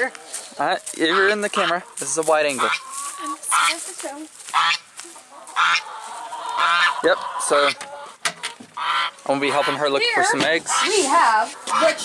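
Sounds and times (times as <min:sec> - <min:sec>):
poultry calling: 0:00.0 - 0:12.0.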